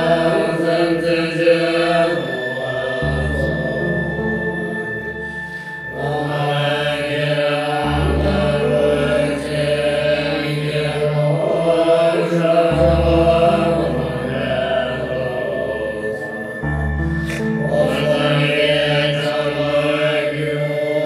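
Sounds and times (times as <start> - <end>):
sustained low musical notes: 0.0 - 21.0
person chanting prayer: 5.9 - 21.0.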